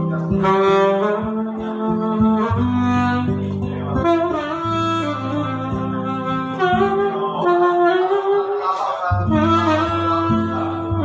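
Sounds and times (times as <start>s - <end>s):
backing accompaniment: 0.0s - 11.0s
saxophone melody: 0.0s - 11.0s.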